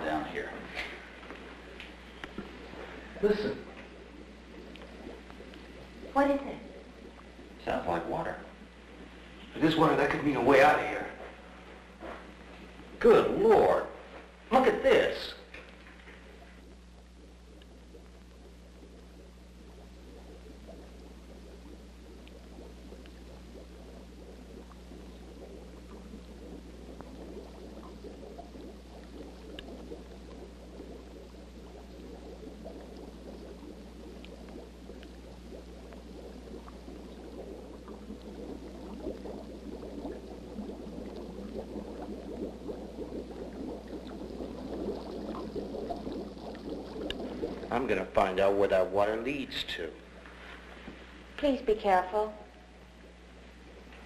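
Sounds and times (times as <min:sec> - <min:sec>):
gurgling water in a cave: 0:00.0 - 0:54.0
steady low hum: 0:00.0 - 0:54.0.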